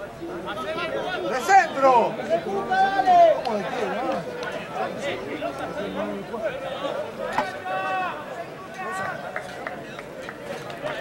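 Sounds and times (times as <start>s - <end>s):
voices calling and chattering: 0.0s - 11.0s
people shouting: 2.5s - 3.6s, 7.6s - 8.2s.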